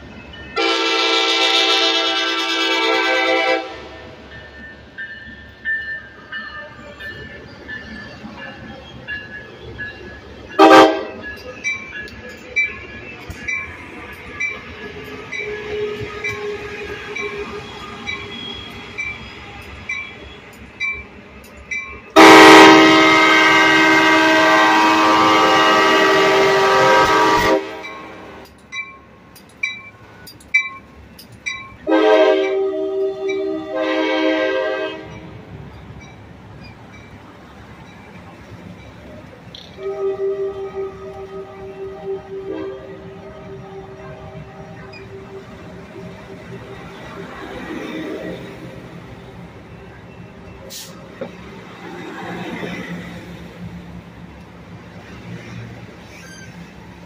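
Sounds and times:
train horn blasts: 0.6 - 4.2, 10.6 - 11.2, 22.2 - 28.4, 31.8 - 35.2, 39.6 - 45.4.

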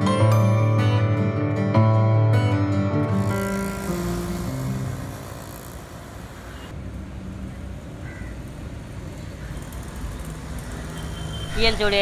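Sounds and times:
background music: 0.0 - 5.7
low rumble of engines and tyres: 3.0 - 12.0
motor scooters passing: 3.0 - 12.0.

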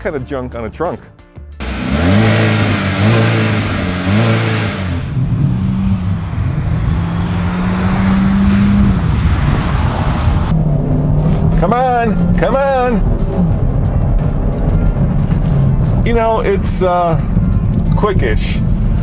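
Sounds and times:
car engine accelerating: 1.6 - 19.0.

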